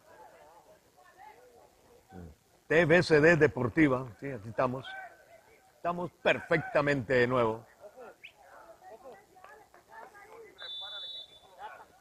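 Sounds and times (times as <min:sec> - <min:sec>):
referee's whistle blast: 0:10.6 - 0:11.6.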